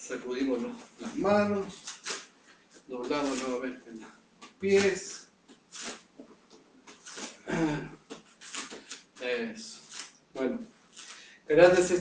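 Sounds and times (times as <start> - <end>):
man breathing: 11.0 - 11.5.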